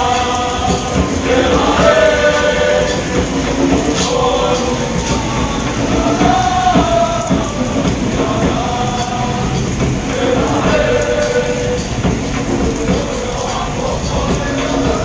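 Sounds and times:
group chanting in unison: 0:00.0 - 0:15.0
steady rain: 0:00.0 - 0:15.0.

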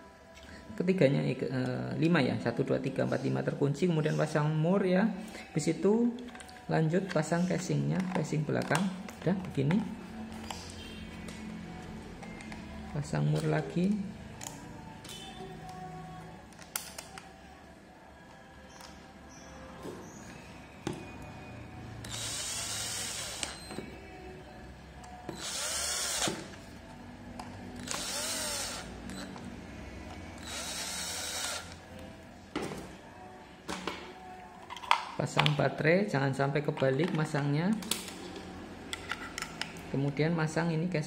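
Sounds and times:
cordless drill driving screws: 0:22.1 - 0:23.6, 0:25.3 - 0:26.5, 0:27.8 - 0:29.3, 0:30.4 - 0:31.8.

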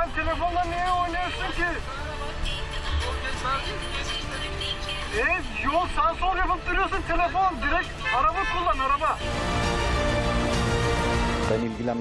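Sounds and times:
voices: 0:00.0 - 0:09.2
background music: 0:00.0 - 0:12.0
low traffic rumble: 0:00.0 - 0:12.0.

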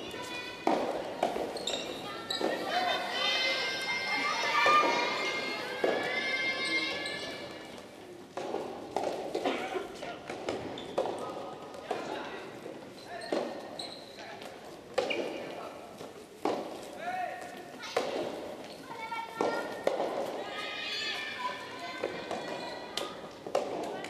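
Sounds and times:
echoing voices shouting: 0:02.6 - 0:07.6.

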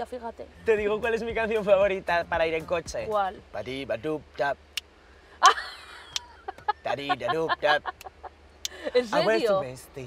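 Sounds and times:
women laughing: 0:05.4 - 0:09.4.

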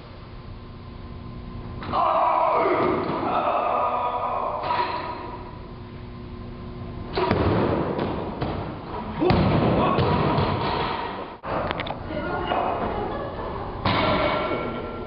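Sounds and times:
barbell dropped on platform: 0:07.1 - 0:08.6, 0:13.8 - 0:14.7
barbell thud and rattle: 0:07.1 - 0:11.3.

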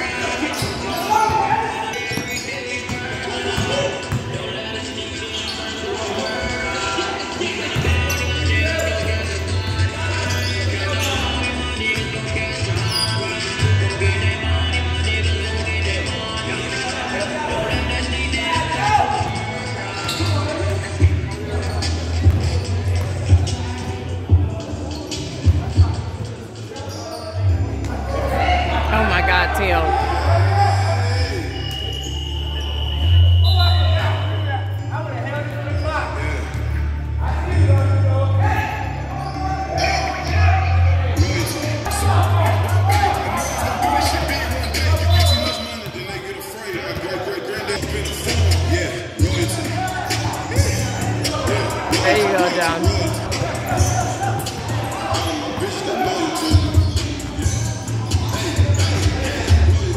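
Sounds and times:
players' voices: 0:00.0 - 0:59.9
basketball bouncing on court: 0:02.1 - 0:04.4, 0:22.2 - 0:23.4
basketball bouncing on gym floor: 0:22.2 - 0:23.2.

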